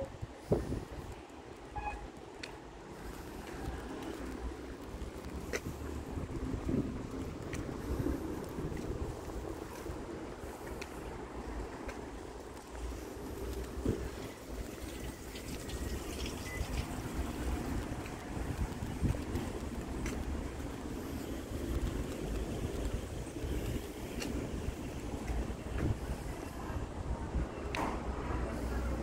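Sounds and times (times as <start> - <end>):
wind noise on microphone: 0.0 - 2.1, 3.9 - 29.0.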